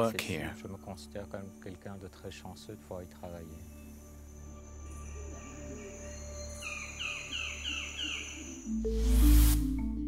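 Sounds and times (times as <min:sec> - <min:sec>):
soft background music: 0:00.0 - 0:10.0
bird calling descending notes: 0:06.6 - 0:10.0.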